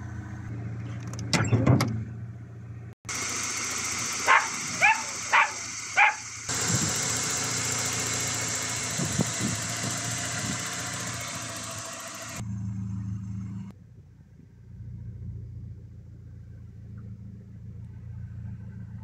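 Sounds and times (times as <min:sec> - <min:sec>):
car engine idling: 0:02.1 - 0:13.7.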